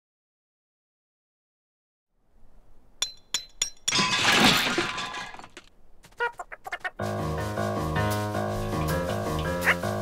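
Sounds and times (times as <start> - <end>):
ringing metal clinks: 3.0 - 4.1
metal parts clattering crash: 3.8 - 5.7.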